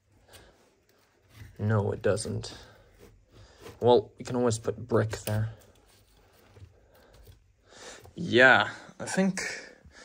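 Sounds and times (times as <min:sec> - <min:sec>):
faint breath: 0:06.6 - 0:08.2.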